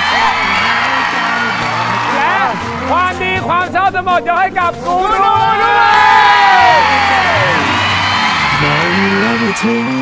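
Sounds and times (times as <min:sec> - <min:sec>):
audience cheering and whooping: 0:00.0 - 0:03.0, 0:05.1 - 0:10.0
backing music: 0:00.0 - 0:10.0.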